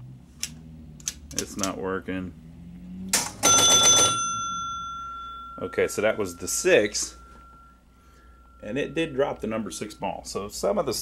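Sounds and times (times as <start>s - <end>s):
pinball machine bell ringing: 3.2s - 11.0s.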